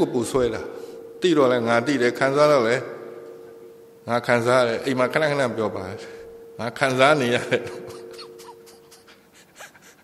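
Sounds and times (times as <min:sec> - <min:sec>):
faint steady hum: 0:00.0 - 0:10.0
man laughing quietly: 0:07.4 - 0:10.0.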